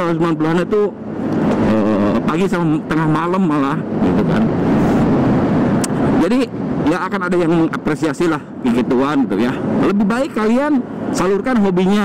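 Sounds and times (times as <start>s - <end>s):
wind and scooter engine: 0.0s - 12.0s.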